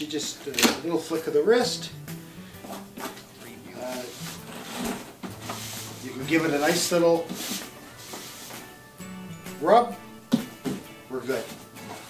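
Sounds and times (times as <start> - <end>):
tape gun and cardboard handling: 2.7 - 8.7.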